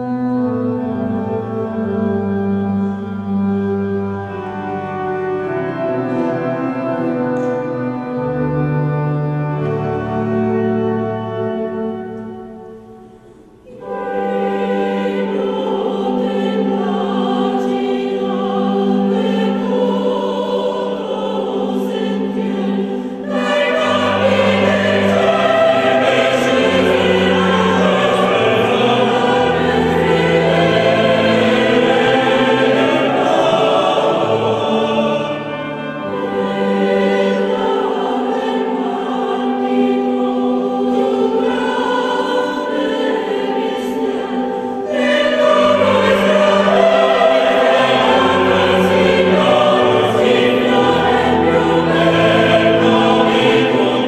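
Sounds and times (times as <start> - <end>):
choir singing held notes: 0.0 - 54.0
low sustained accompaniment: 0.0 - 54.0.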